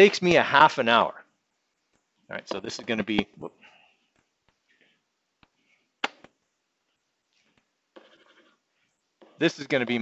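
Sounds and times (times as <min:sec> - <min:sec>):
stylus tapping on screen: 0:02.8 - 0:03.5
stylus scratching: 0:07.3 - 0:09.9.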